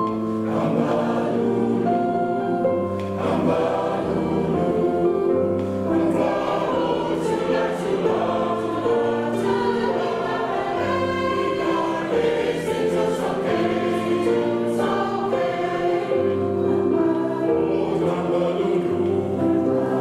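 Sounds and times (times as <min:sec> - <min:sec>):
mixed choir singing in harmony: 0:00.0 - 0:20.0.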